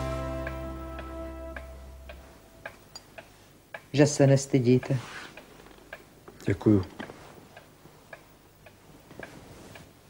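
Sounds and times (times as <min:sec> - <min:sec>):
sustained music chord: 0:00.0 - 0:02.6
clock ticking: 0:00.0 - 0:10.0.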